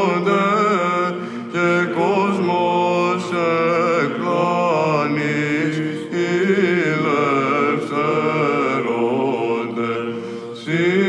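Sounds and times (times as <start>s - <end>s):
held vocal drone: 0.0s - 11.0s.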